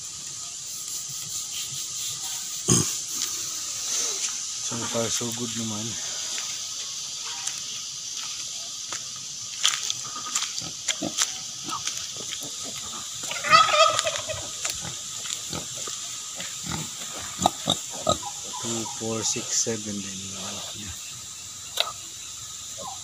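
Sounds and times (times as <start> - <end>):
pigs grunting: 2.2 - 3.3, 10.0 - 19.6
high-pitched pig call: 13.2 - 14.5.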